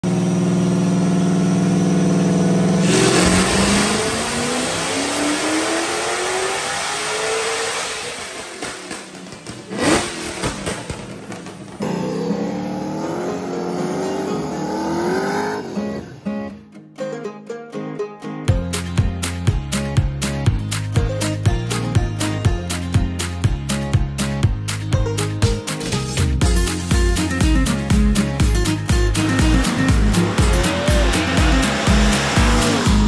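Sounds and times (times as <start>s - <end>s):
car engine revving on dyno: 0.0s - 11.0s, 11.7s - 15.8s, 29.1s - 33.0s
exhaust bang: 2.2s - 4.8s
exhaust pops and crackles: 8.1s - 11.8s.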